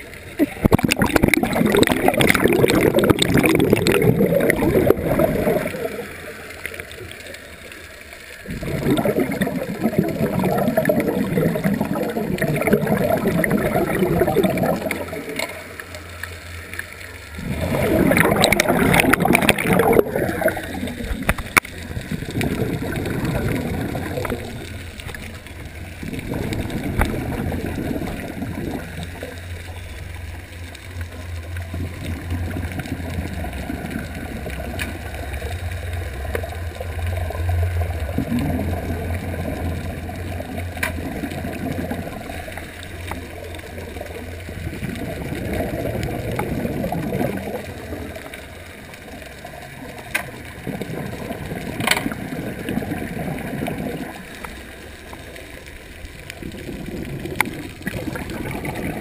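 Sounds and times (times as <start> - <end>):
exhaled bubbles: 0.0 - 59.0
low steady hum: 0.0 - 59.0.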